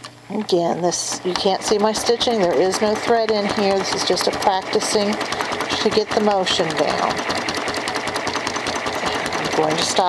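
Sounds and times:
sewing machine running: 1.2 - 10.0
sewing needle striking rapidly: 1.2 - 10.0.

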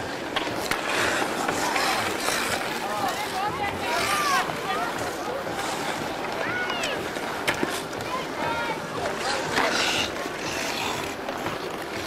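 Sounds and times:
many distant voices: 0.0 - 12.0
skate blades scraping on ice: 0.0 - 12.0.

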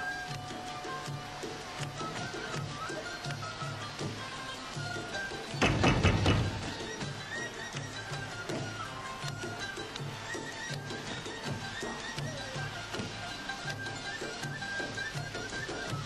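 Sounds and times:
background music with beat: 0.0 - 16.0.

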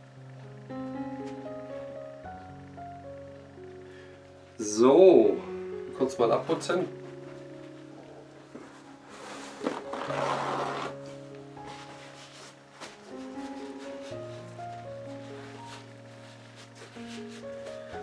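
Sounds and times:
soft held-note music: 0.0 - 18.0
rustling noise: 6.6 - 18.0.

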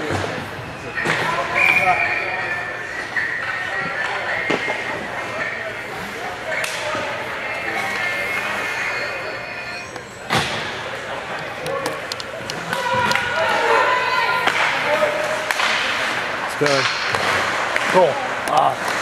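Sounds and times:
echoing voices: 0.0 - 19.0.

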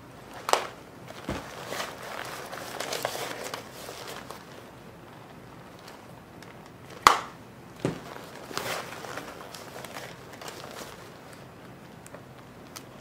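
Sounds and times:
leather jacket rustling: 1.1 - 4.5.

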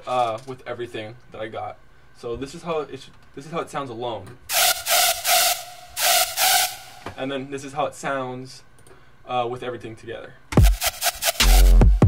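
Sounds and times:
hissy synth notes: 4.5 - 7.1.

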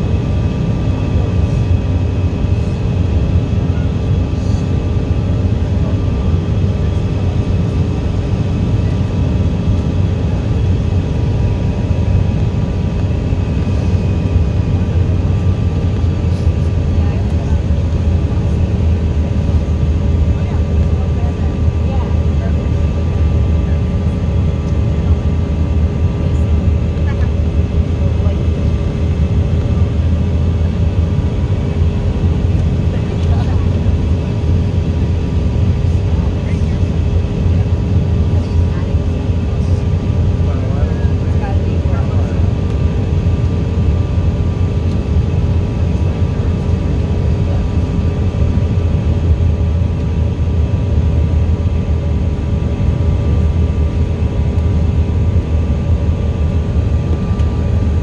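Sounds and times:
airliner engine and airflow drone: 0.0 - 58.0.

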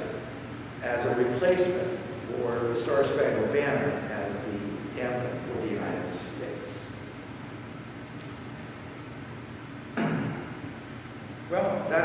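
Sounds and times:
steady room hiss: 0.0 - 12.0
man clearing throat: 9.9 - 10.6.

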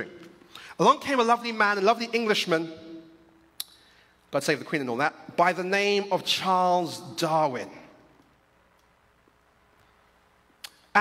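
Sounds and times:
man speaking: 0.0 - 3.1, 4.3 - 8.0.

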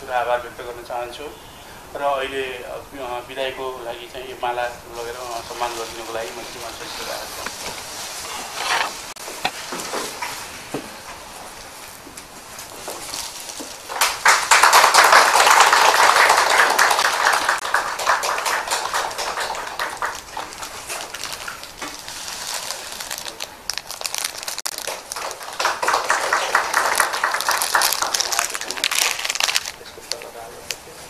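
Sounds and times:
small group clapping: 13.9 - 21.7, 24.6 - 30.3.

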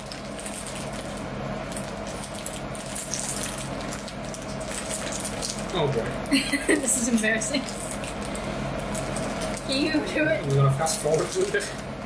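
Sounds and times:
foil snack bag crinkling: 0.0 - 12.0
low electrical hum: 0.0 - 12.0.

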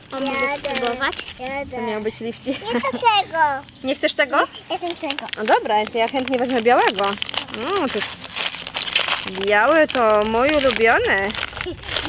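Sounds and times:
plastic wrapper crinkling and tearing: 0.0 - 1.8, 4.7 - 12.0.

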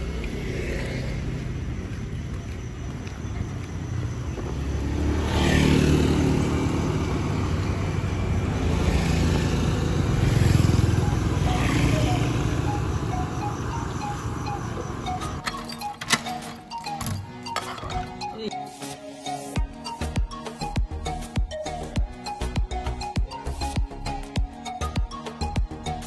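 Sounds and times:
motor scooters passing: 0.0 - 15.5.

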